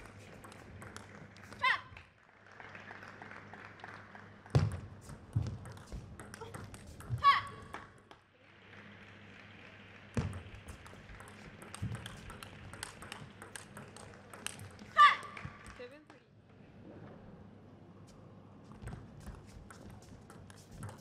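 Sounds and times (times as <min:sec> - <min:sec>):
table tennis ball clicks: 0:10.2 - 0:15.0.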